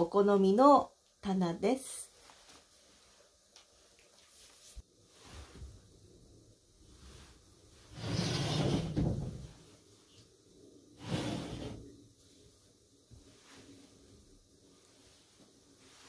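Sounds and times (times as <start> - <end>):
sliding door in wooden track: 7.9 - 9.5, 11.0 - 11.8.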